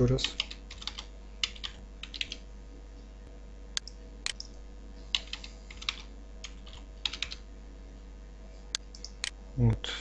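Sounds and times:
faint steady hum: 0:00.0 - 0:10.0
computer keyboard keystrokes: 0:00.2 - 0:02.4, 0:03.8 - 0:07.4, 0:08.8 - 0:09.3.

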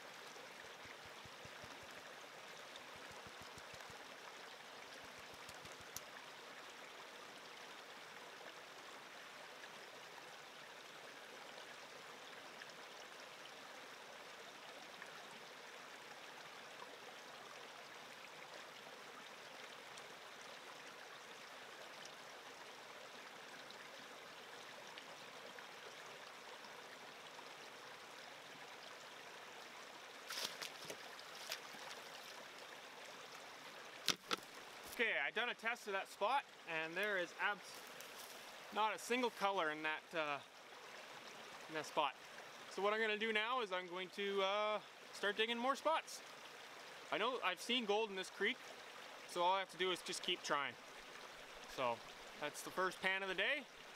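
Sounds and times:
faint creek running: 0:00.0 - 0:53.9.

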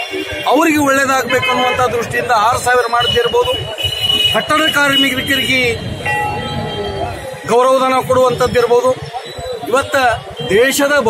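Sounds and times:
man speaking into microphones: 0:00.3 - 0:11.0
steady pitched tone: 0:04.3 - 0:10.5.

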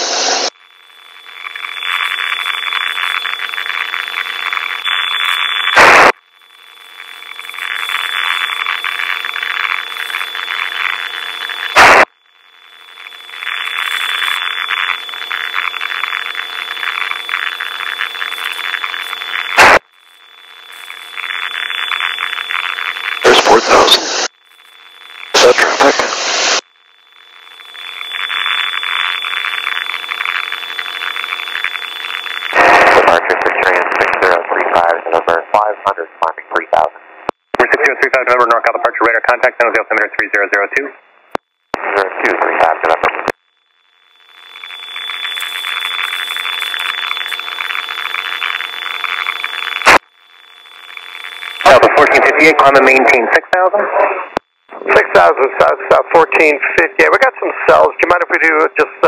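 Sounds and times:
radio hiss with high whine: 0:00.0 - 0:59.0.

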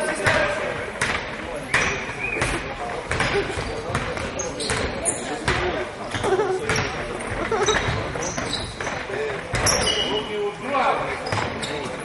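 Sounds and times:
spectators chatting: 0:00.0 - 0:12.0
basketball bouncing on wood: 0:01.0 - 0:07.0.

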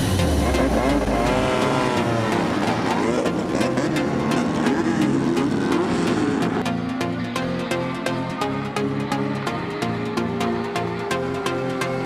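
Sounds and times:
background music with a beat: 0:00.0 - 0:12.0
race car engines revving: 0:00.0 - 0:12.0.

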